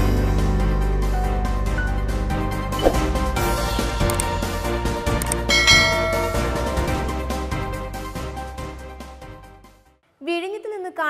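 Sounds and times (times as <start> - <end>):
background music: 0.0 - 10.0
bell-like ding: 5.5 - 7.2.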